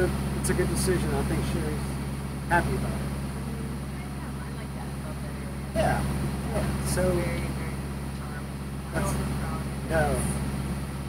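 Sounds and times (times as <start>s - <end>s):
boat engine humming: 0.0s - 11.0s.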